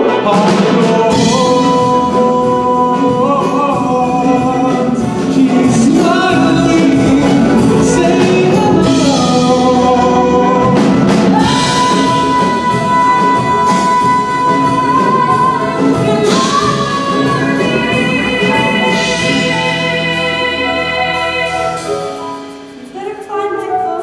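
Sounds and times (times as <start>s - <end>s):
instrumental accompaniment: 0.0s - 24.0s
woman singing: 0.1s - 22.2s, 22.9s - 24.0s.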